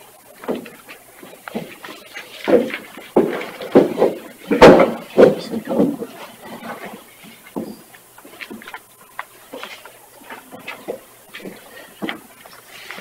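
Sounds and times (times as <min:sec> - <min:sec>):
papers rustling: 0:00.0 - 0:13.0.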